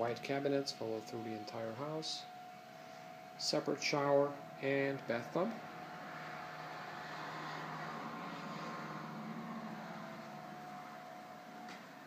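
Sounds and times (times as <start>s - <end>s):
background hum with hiss: 0.0s - 12.0s
faint steady tone: 0.0s - 12.0s.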